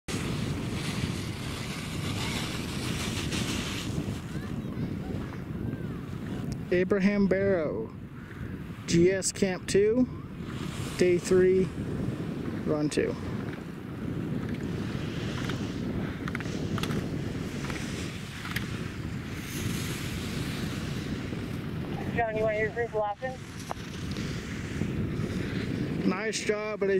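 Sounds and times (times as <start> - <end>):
wind buffeting microphone: 0.0 - 26.9.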